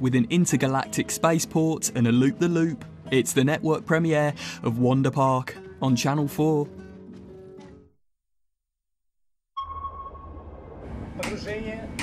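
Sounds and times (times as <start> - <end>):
sonar ping: 9.6 - 11.0.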